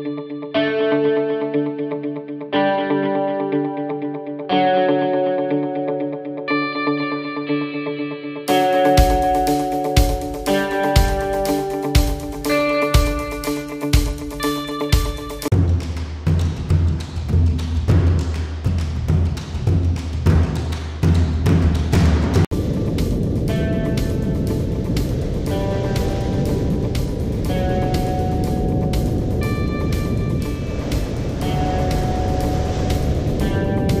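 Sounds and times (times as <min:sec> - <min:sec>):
held music notes: 0:08.4 - 0:15.9
pulsing percussive music: 0:08.5 - 0:34.0
steady rushing noise: 0:08.5 - 0:34.0.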